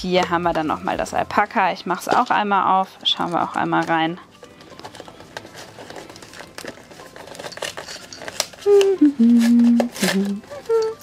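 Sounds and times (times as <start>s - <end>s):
woman humming: 8.6s - 11.0s.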